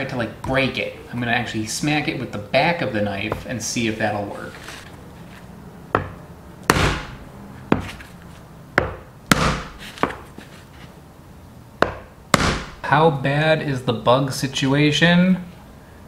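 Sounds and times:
knife knocking on hard fruit shell: 6.0s - 8.0s, 8.8s - 10.2s, 11.8s - 12.8s.

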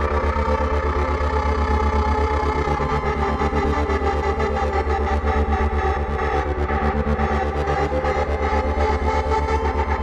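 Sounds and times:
pulsing synthesizer bass drone: 0.0s - 10.0s.

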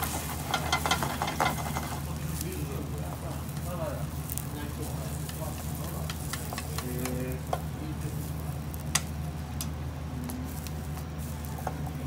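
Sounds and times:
chopsticks scraping pan: 0.0s - 2.4s
egg sizzling in frying pan: 0.0s - 12.0s
steady low hum: 0.0s - 12.0s.

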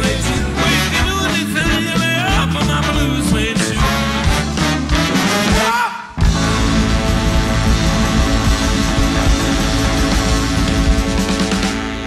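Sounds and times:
drum kit: 0.0s - 12.0s
horn section: 0.0s - 12.0s
keyboards: 0.0s - 12.0s
electric guitar: 6.2s - 12.0s.

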